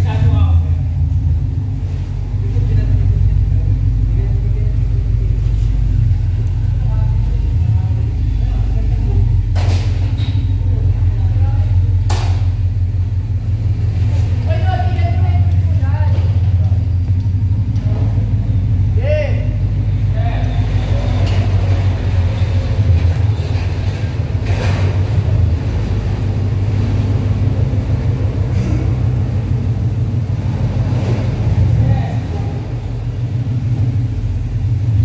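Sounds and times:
car engine idling: 0:00.0 - 0:35.0.

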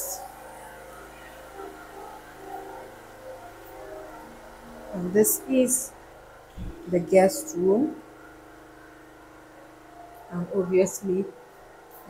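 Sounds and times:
faint even tones: 0:00.0 - 0:12.0.

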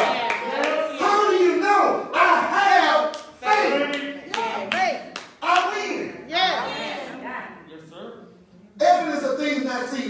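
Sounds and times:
sharp hand claps: 0:03.1 - 0:05.8.

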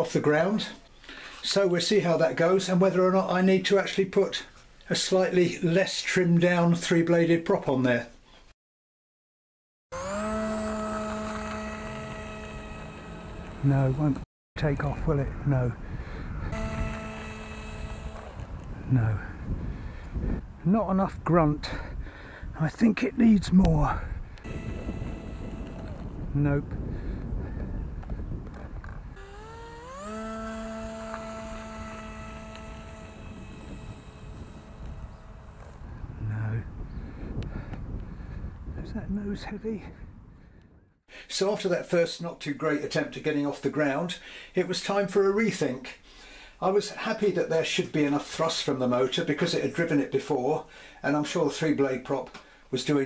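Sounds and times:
electric motor propeller whine: 0:09.9 - 0:14.3, 0:15.1 - 0:19.9, 0:24.4 - 0:36.3.

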